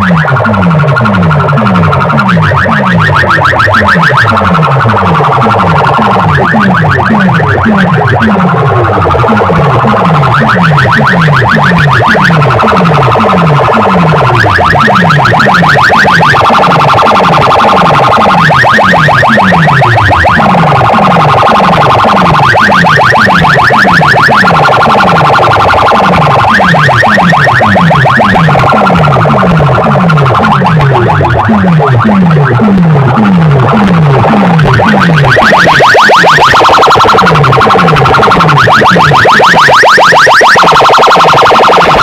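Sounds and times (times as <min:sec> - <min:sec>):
falling bass sweep: 0:00.0 - 0:18.4, 0:24.3 - 0:42.0
alarm-like buzzing pulses: 0:00.0 - 0:42.0.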